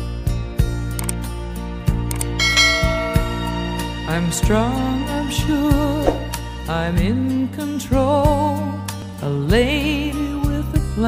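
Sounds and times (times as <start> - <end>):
bright bell ding: 2.4 - 4.1
instrumental music low sustained notes: 2.4 - 6.0.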